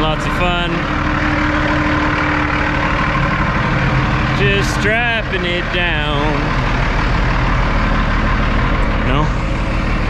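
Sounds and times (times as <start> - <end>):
diesel truck engine idling: 0.0 - 10.0.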